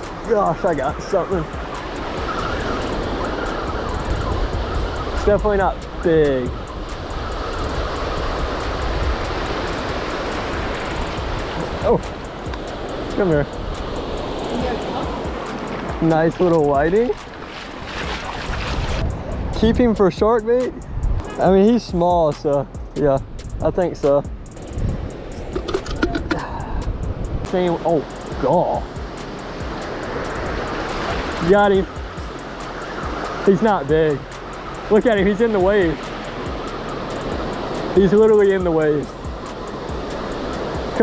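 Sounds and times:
low rumble of wind: 0:00.0 - 0:33.3
surf breaking on beach: 0:14.4 - 0:19.1.

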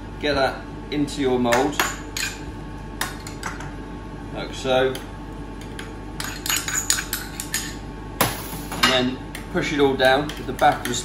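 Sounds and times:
metal spoon clinking on pots: 0:05.8 - 0:07.8.

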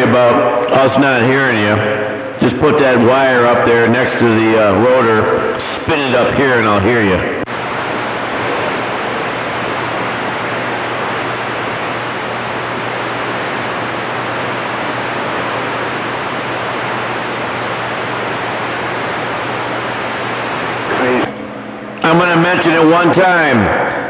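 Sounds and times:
faint low hum: 0:00.0 - 0:24.0
radio static hiss: 0:02.4 - 0:21.4, 0:22.0 - 0:24.0.

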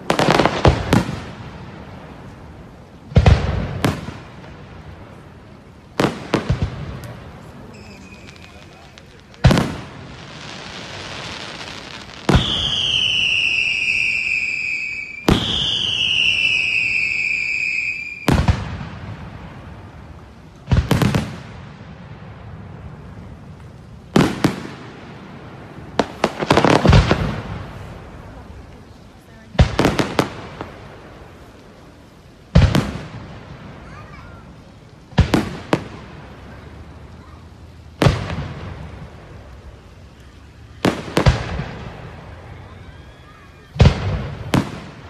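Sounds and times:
fireworks shells bursting: 0:06.0 - 0:18.7
whistles falling in pitch: 0:07.7 - 0:08.7, 0:12.4 - 0:18.3.

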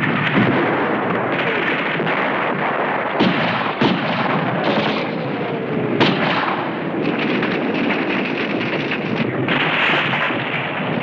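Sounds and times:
explosions: 0:00.0 - 0:11.0
gunfire: 0:00.0 - 0:11.0.

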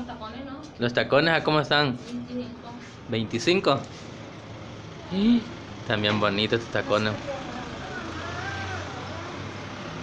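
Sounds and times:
faint voices talking: 0:04.6 - 0:10.0.

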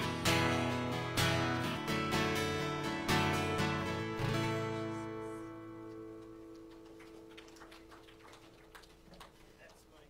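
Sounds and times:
acoustic guitar chord: 0:00.0 - 0:06.2.

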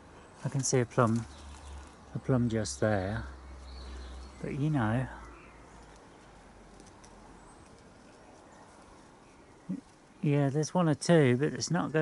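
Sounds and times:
distant birds chirping: 0:00.0 - 0:12.0
low garden ambience: 0:00.0 - 0:12.0.

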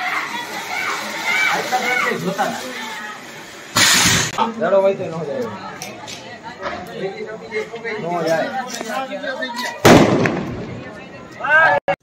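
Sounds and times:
voices: 0:00.0 - 0:12.0
firework bang overhead: 0:03.7 - 0:04.4, 0:09.8 - 0:11.0.

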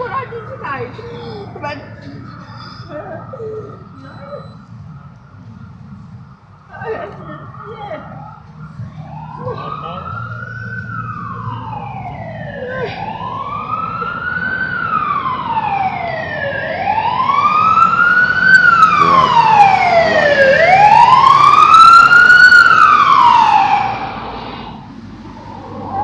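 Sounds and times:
emergency vehicle siren wailing: 0:00.0 - 0:26.0.

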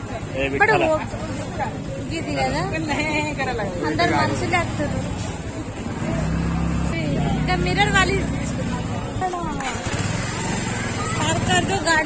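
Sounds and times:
passersby's voices: 0:00.0 - 0:12.0
vehicle engine humming: 0:00.0 - 0:12.0.

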